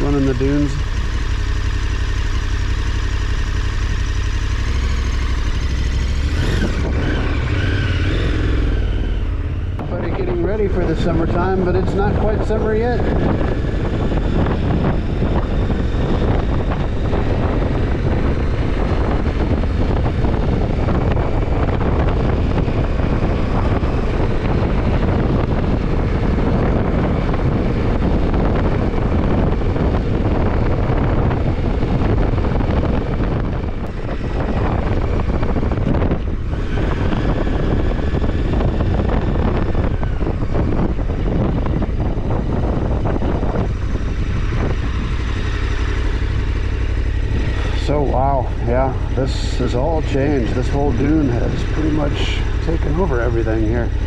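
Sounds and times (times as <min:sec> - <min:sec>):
motorcycle engine running: 0:00.0 - 0:54.0
wind rushing over microphone: 0:00.0 - 0:54.0.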